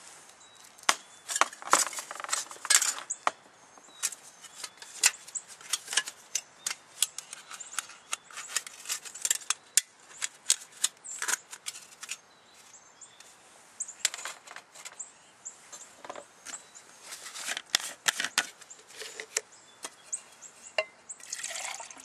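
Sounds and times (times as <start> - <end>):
small metal pieces clinking: 1.3 - 3.1.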